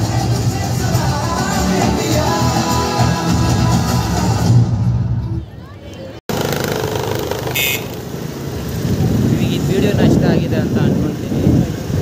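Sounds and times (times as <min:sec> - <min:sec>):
music: 0:00.0 - 0:05.4
street traffic noise: 0:00.0 - 0:12.0
cars passing: 0:05.9 - 0:12.0
motorbikes passing: 0:06.0 - 0:12.0.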